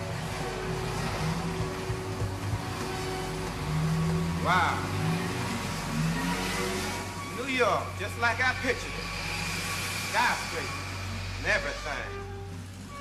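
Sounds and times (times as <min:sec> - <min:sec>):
cars accelerating in traffic: 0:00.0 - 0:13.0.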